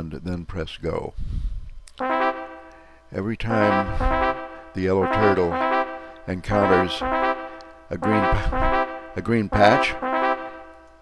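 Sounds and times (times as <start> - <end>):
synthesized note: 2.0 - 11.0.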